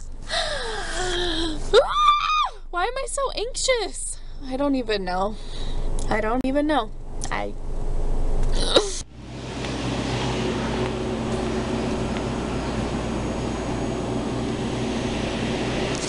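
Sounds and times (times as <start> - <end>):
ventilation hiss and hum: 0.0 - 16.0
car cabin rumble: 7.3 - 16.0.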